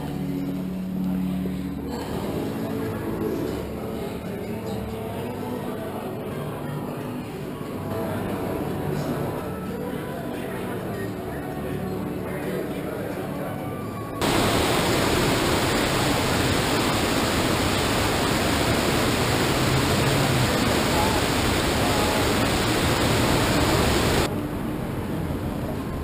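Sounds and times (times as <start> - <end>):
waterfall cascading into pool: 14.2 - 24.3.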